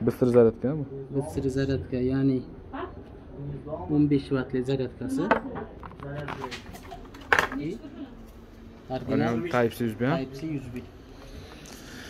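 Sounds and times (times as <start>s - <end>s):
object set down on glass counter: 5.3s - 7.6s.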